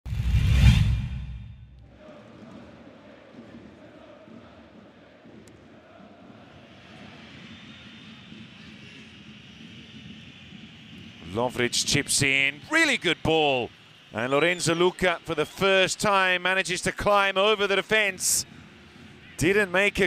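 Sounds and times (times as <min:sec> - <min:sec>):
stadium crowd murmur: 0:01.9 - 0:20.0.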